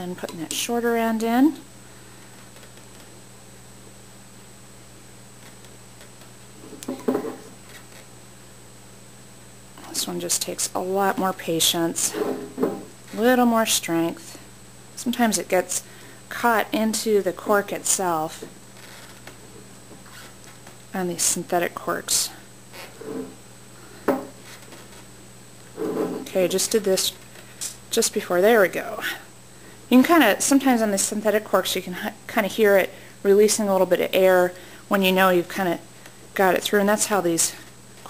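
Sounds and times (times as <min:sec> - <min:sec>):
faint hum: 0:00.0 - 0:38.0.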